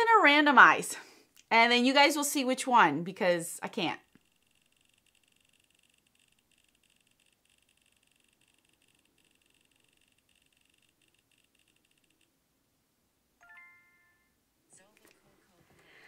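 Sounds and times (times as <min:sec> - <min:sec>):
faint rapid ticking from phone: 0:04.1 - 0:12.3.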